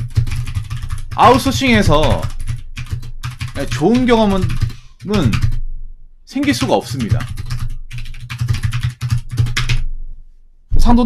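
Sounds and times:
fast typing on keyboard: 0.0 - 5.6, 6.3 - 9.9.

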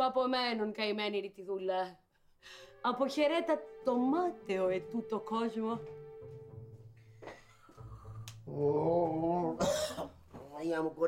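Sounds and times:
harsh cough-like burst: 9.6 - 10.2.

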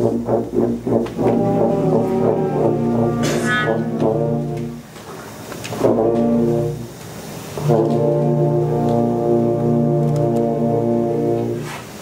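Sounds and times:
low sustained brass chord: 0.0 - 4.9, 7.5 - 11.7
concert wind band playing: 0.0 - 12.0.

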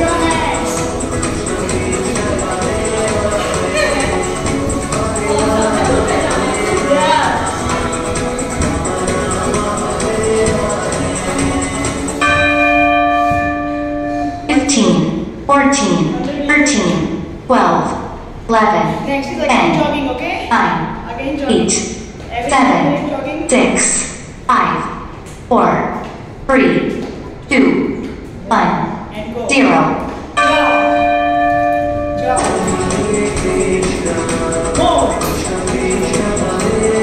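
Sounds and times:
workout music: 0.0 - 17.4, 26.5 - 37.0
bell chime ringing: 12.2 - 14.5, 30.4 - 32.8.

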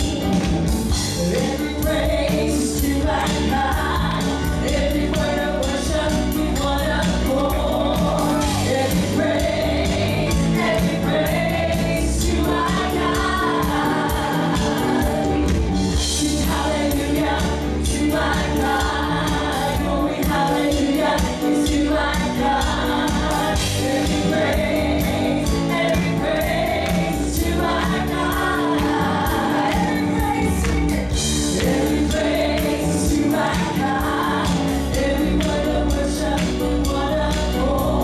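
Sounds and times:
drums: 0.0 - 38.0
electric bass: 0.0 - 38.0
keyboard: 0.0 - 38.0
backing singers: 1.0 - 38.0
woman singing lead: 1.0 - 38.0.

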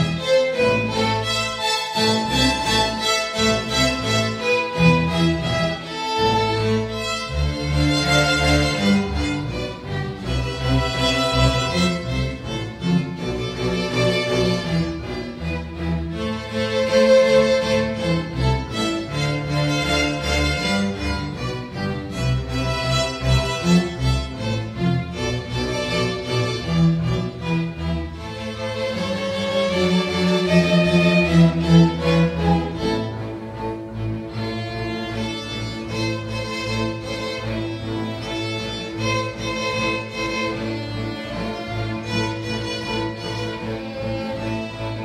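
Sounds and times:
string orchestra playing: 0.0 - 45.0.

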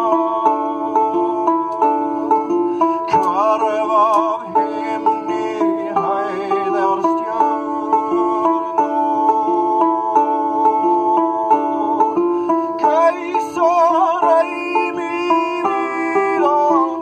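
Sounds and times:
lyre plucked: 0.0 - 17.0
man singing long notes: 0.0 - 17.0.

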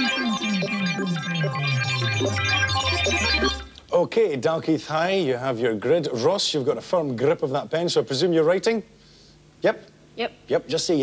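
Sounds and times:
sliding synth bass line: 0.0 - 3.8
rapid high synth blips: 0.0 - 3.9.

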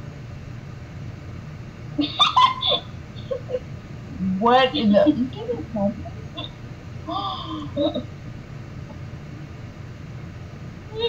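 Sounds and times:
high-pitched giggling: 2.0 - 3.6, 7.1 - 8.1.

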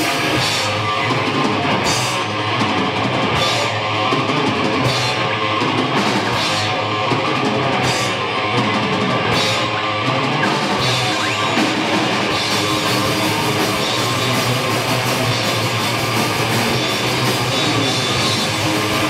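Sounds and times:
punk band playing: 0.0 - 19.0.

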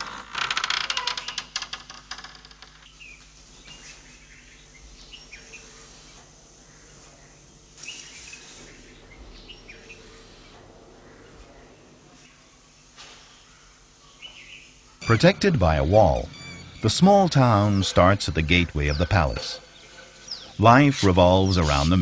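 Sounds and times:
faint steady hum: 1.2 - 22.0
birds chirping: 2.8 - 22.0.

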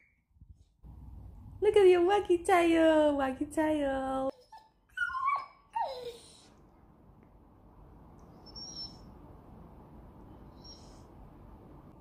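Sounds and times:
dog whining: 4.3 - 6.6, 8.3 - 9.2, 10.4 - 11.1.

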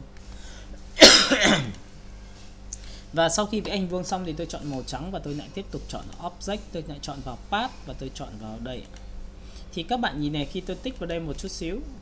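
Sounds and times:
man's cough-like vocal burst: 1.0 - 1.8.

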